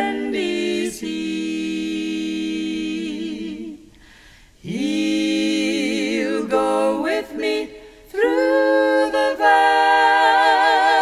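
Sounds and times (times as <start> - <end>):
trio singing a cappella: 0.0 - 11.0.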